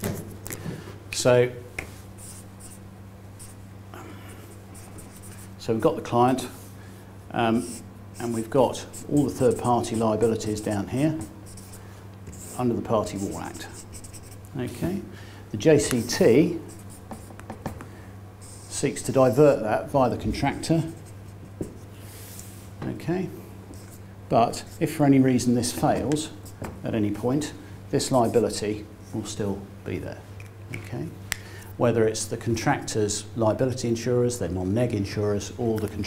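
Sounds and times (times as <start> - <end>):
steady low hum: 0.0 - 36.0
marker scratching on paper: 2.2 - 2.8, 4.8 - 5.5, 7.6 - 14.5, 15.8 - 17.5, 18.4 - 18.8, 20.8 - 21.9.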